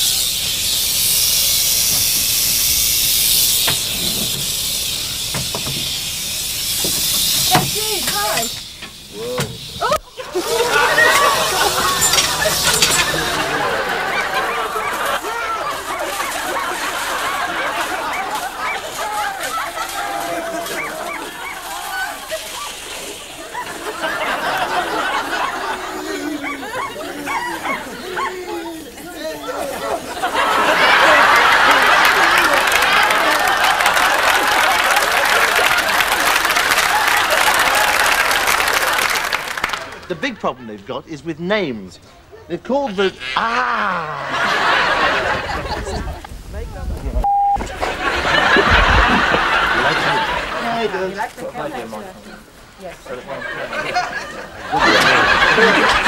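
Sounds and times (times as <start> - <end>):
snake hissing: 0.0 - 30.3
excited voices calling: 0.0 - 56.0
audience applause and laughter: 9.8 - 40.8, 43.2 - 46.3, 47.6 - 51.7, 52.6 - 56.0.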